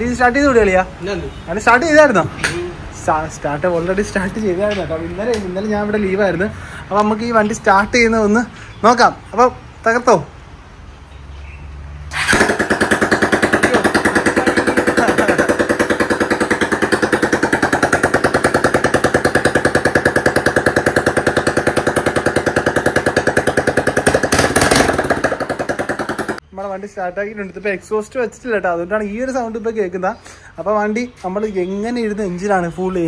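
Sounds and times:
motorcycle engine idling: 12.2 - 26.4.

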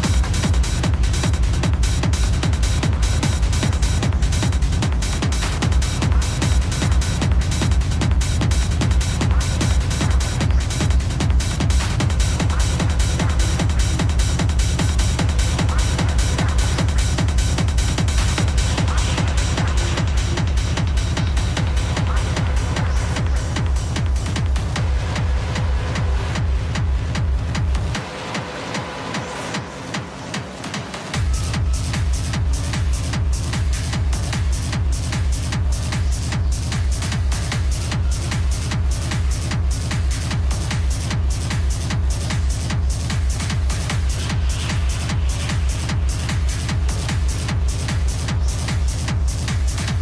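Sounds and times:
hard techno music: 0.0 - 50.0
hi-hat hits: 0.0 - 50.0
kick drum: 0.0 - 50.0.

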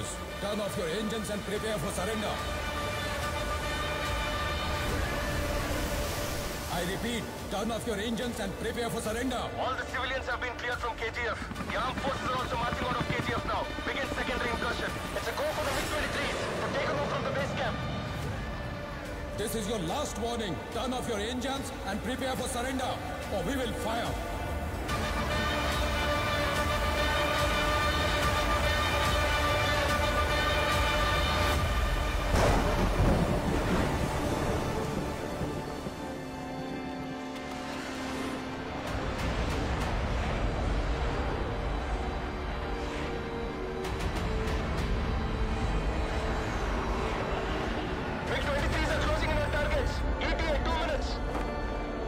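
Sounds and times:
rain: 0.0 - 10.5, 14.8 - 50.2
dramatic film score: 0.0 - 52.0
thunder: 32.2 - 36.1.

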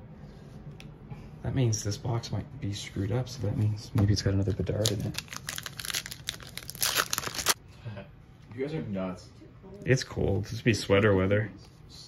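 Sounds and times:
foil wrapper tearing: 4.4 - 7.6.

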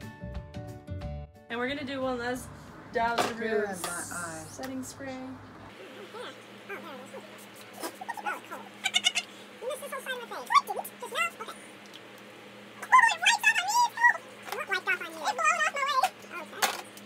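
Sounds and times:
faint steady hum: 1.5 - 17.0
sped-up women chattering and laughing: 5.7 - 11.6.

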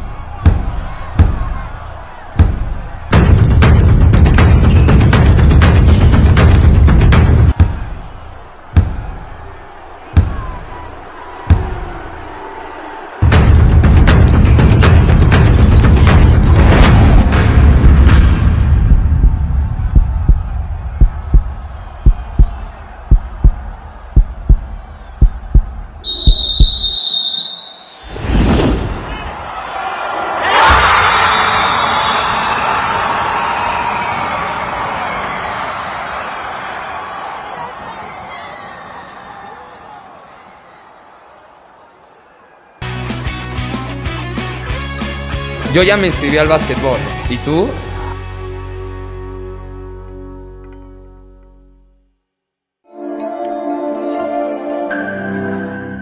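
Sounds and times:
heavy echoing thuds: 2.4 - 9.4, 13.2 - 25.9
heartbeat double thumps: 13.2 - 26.8.

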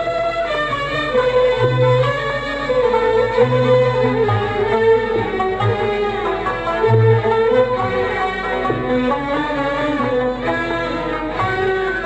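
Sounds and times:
arabic ensemble with violins: 0.0 - 12.0.

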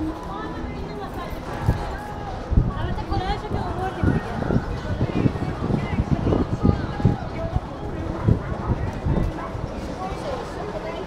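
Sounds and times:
passersby talking: 0.0 - 11.0.

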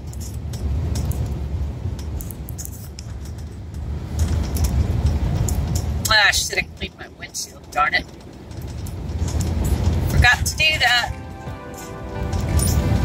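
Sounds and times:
engine and road rumble: 0.0 - 13.0
light clicks and rattles: 0.0 - 13.0.

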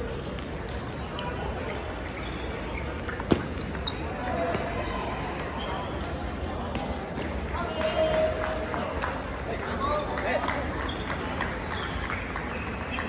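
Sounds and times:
crowd chatter in a hall: 0.0 - 13.0.

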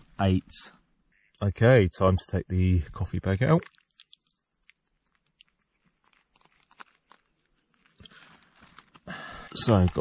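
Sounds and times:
small wet clicks and drips: 3.4 - 9.1.

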